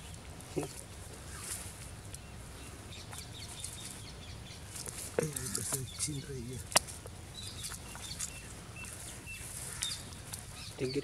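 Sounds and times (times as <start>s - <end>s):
faint bird chirps: 0.0s - 6.7s, 7.3s - 11.0s
low outdoor background noise: 0.0s - 11.0s.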